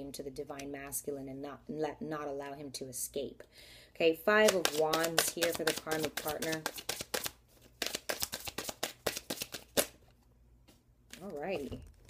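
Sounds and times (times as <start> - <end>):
cards being shuffled: 4.4 - 10.1.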